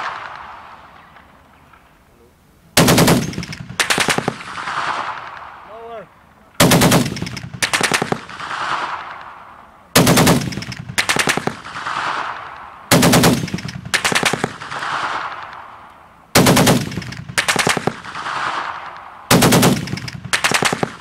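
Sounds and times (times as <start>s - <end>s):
rolling echo of gunfire: 0.0s - 1.3s, 2.8s - 5.8s, 6.6s - 21.0s
machine gun firing bursts: 2.8s - 5.4s, 6.6s - 9.1s, 10.0s - 15.5s, 16.4s - 21.0s.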